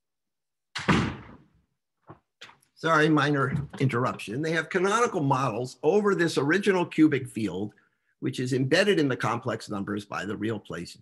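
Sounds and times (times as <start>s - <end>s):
loud bang: 0.8s - 1.5s
person lecturing: 2.8s - 11.0s.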